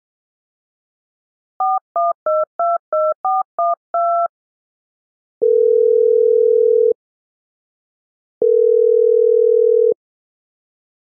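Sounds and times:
telephone ringback beep: 5.4s - 7.0s, 8.4s - 10.0s.

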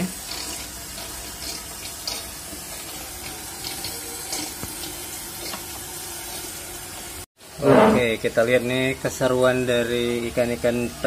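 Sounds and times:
running and trickling water: 0.0s - 7.3s.

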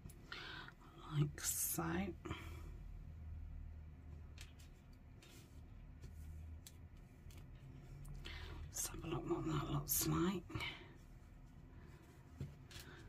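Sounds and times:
steady low hum: 0.0s - 13.0s
cloth and paper rustling: 4.2s - 8.0s.

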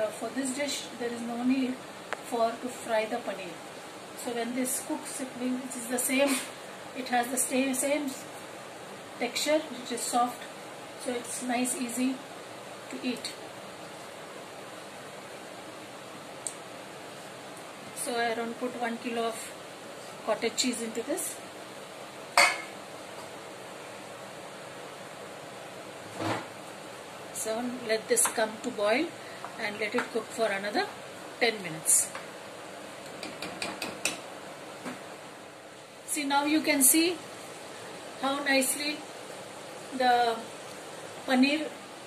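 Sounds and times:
steady kitchen hiss: 0.0s - 42.0s.

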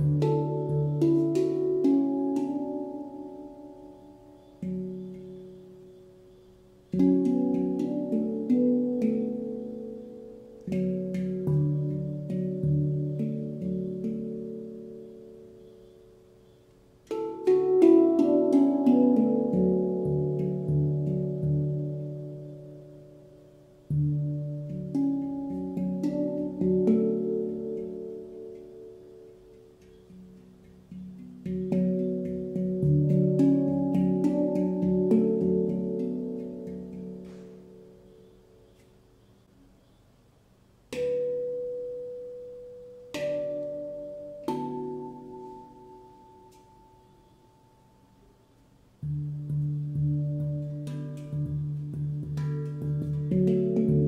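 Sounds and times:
handpan notes ringing: 0.0s - 39.2s, 40.9s - 48.4s, 49.0s - 54.0s.

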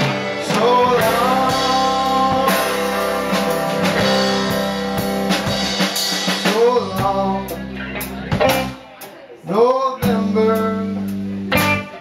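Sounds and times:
person singing: 0.0s - 5.2s, 6.2s - 8.8s, 9.4s - 12.0s
drum kit: 0.0s - 9.2s, 10.0s - 12.0s
electric guitars: 0.0s - 9.3s, 10.0s - 12.0s
live band playing: 0.0s - 12.0s.

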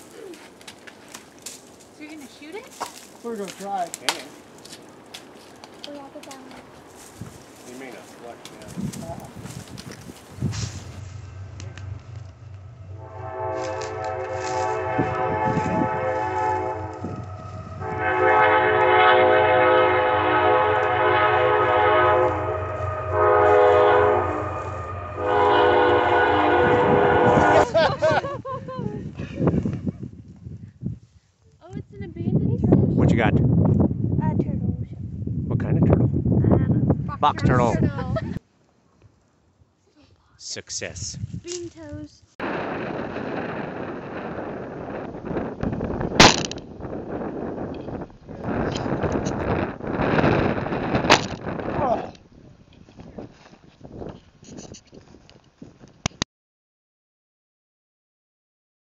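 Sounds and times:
wind noise on microphone: 6.0s - 38.4s, 40.9s - 56.2s
train horn blasts: 11.0s - 27.9s
people laughing: 27.5s - 29.5s, 37.8s - 38.4s
person speaking: 37.1s - 38.4s
sharp loud bang: 46.2s - 46.7s.

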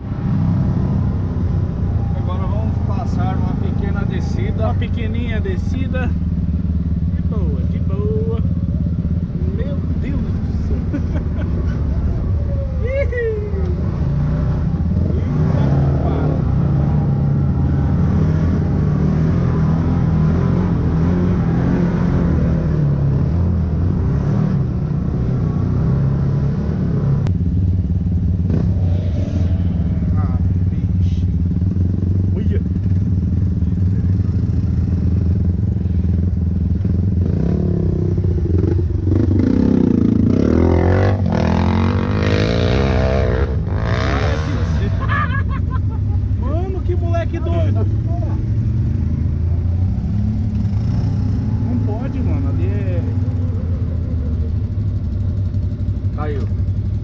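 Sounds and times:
off-road vehicle engine running: 0.0s - 57.0s
engine revving: 13.6s - 27.4s, 28.2s - 45.6s, 46.5s - 57.0s.

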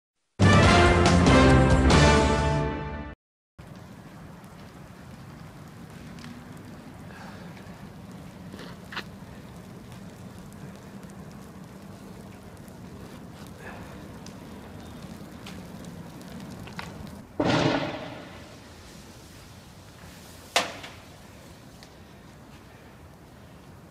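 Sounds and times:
sharp pops and cracks: 3.6s - 18.7s, 20.4s - 23.2s
low street rumble: 3.6s - 23.9s.

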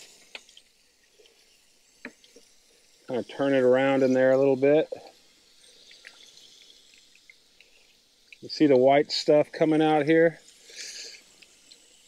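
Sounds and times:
small water drips: 0.0s - 12.0s
water spraying inside tank: 0.0s - 12.0s
water dribbling from drain: 2.0s - 12.0s.

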